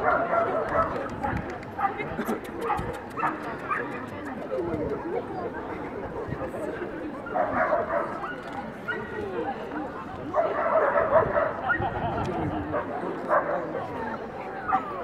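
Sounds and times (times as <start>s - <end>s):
people talking: 0.0s - 15.0s.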